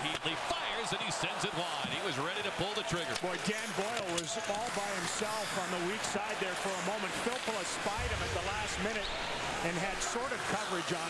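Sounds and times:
arena crowd noise: 0:00.0 - 0:11.0
man commentating: 0:04.3 - 0:11.0
low thud: 0:08.0 - 0:08.8.

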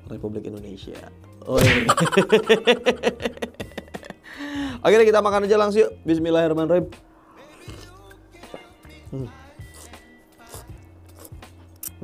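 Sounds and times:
quiet background music: 0:00.0 - 0:12.0
man humming approval: 0:09.0 - 0:09.5
man slurping and chewing noodles: 0:09.2 - 0:12.0.

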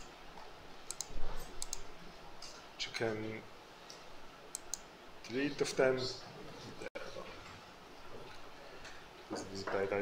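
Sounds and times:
computer mouse clicks: 0:00.9 - 0:02.6, 0:04.5 - 0:04.9.

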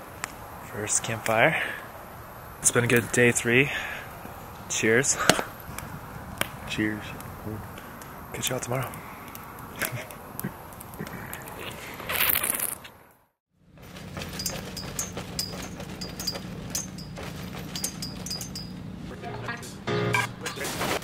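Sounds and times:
campfire crackling and popping: 0:00.0 - 0:13.2
metal tent frame clinking: 0:13.8 - 0:21.0.

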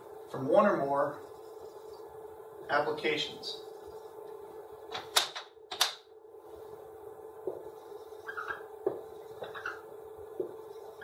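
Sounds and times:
low room hum: 0:00.0 - 0:11.0
marker squeaking on whiteboard: 0:07.9 - 0:09.9.

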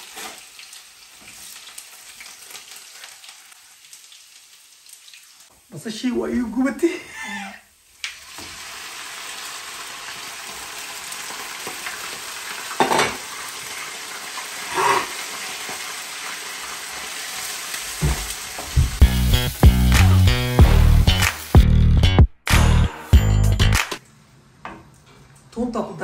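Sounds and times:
meat sizzling in hot oil: 0:00.0 - 0:06.0, 0:07.7 - 0:22.0
music: 0:19.0 - 0:24.0.

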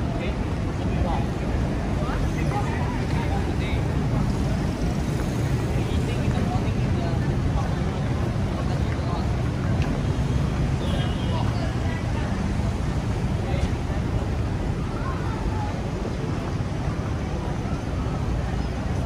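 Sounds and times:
people's voices: 0:00.0 - 0:19.0
traffic rumble: 0:00.0 - 0:19.0.

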